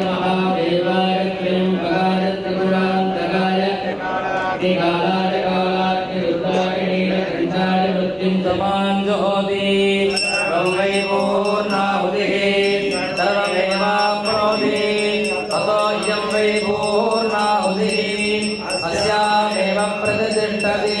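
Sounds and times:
men chanting together: 0.0s - 21.0s
high ringing: 10.1s - 21.0s.

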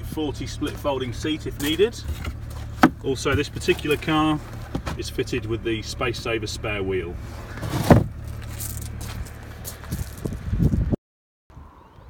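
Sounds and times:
scraping and handling noise: 1.6s - 5.1s, 7.2s - 10.3s
car boot panel thump: 2.2s - 3.5s, 7.6s - 8.2s.

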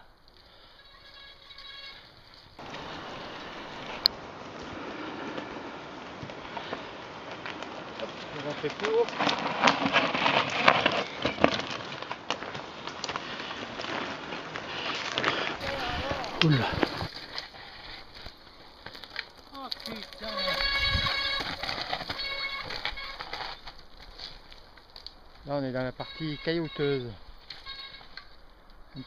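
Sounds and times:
bike rattling: 0.0s - 29.0s
tyres crunching on stones: 0.4s - 29.0s.

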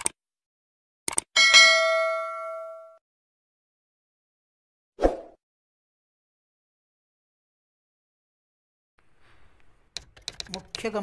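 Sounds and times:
short clicks: 1.1s - 1.3s
notification bell ding: 1.4s - 3.0s.

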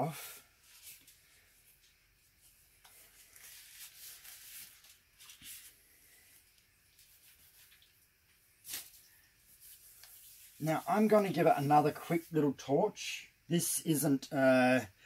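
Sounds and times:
disposable gloves rubbing and crinkling: 0.5s - 8.0s, 8.6s - 12.4s.

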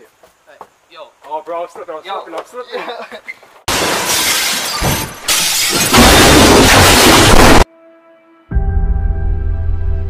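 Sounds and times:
crash of smashing and shattering: 3.7s - 7.7s.

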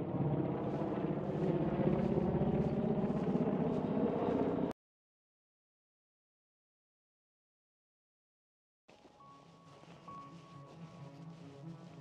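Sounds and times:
helicopter rotor chopping: 0.0s - 4.7s.

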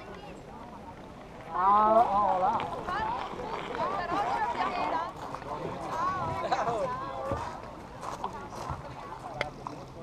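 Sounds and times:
group chatter with children: 0.0s - 10.0s.

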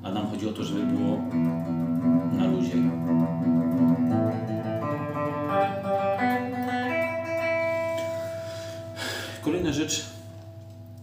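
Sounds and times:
electric guitar notes: 0.0s - 11.0s.

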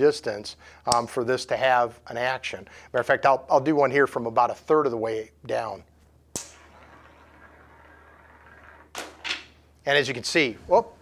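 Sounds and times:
ball snapping against magnet: 6.3s - 7.5s
ball rolling along rail: 6.4s - 9.7s.

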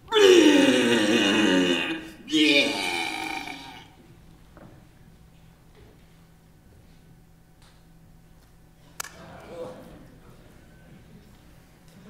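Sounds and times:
person crying out wordlessly: 0.1s - 4.0s.

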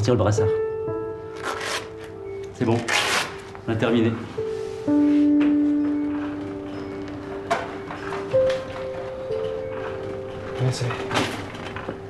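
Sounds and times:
slow sustained background music: 0.0s - 12.0s.

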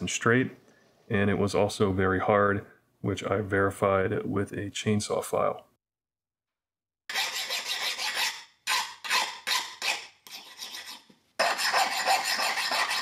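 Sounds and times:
file scraping steel blade: 7.1s - 13.0s.

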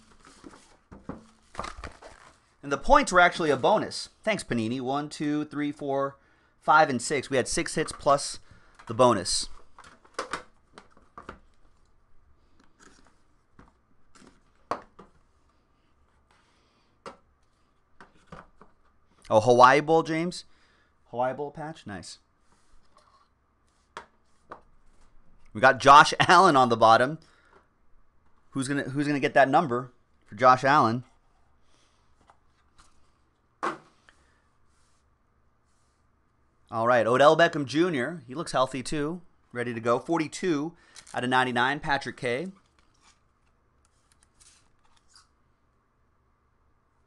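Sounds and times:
card rustle on mat: 0.0s - 2.5s, 42.6s - 45.3s.

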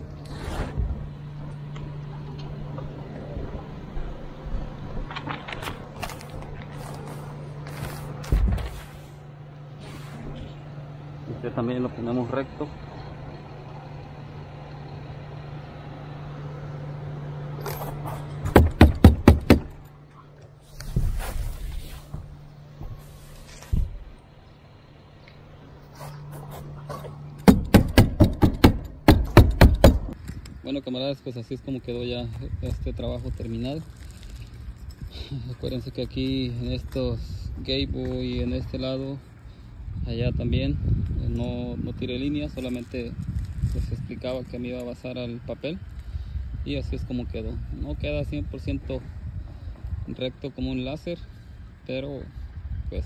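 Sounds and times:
steady low hum: 0.0s - 53.0s
stapler strikes: 18.4s - 19.8s, 27.4s - 30.2s.

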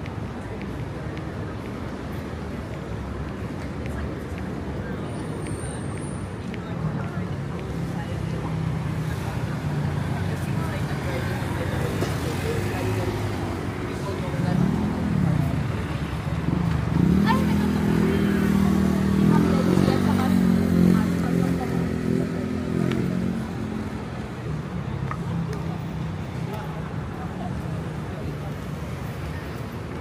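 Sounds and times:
vehicle engines running: 0.0s - 30.0s
engine revving: 16.7s - 23.4s.

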